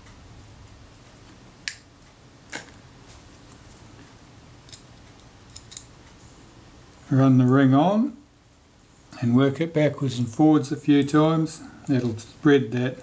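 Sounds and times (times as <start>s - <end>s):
faint room hiss: 0.0s - 13.0s.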